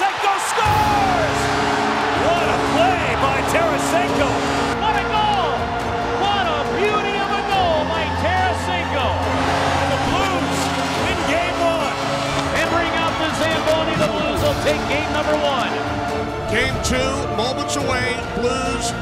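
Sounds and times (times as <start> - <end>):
crowd shouting excitedly: 0.0 - 16.4
background music with bass notes: 0.7 - 19.0.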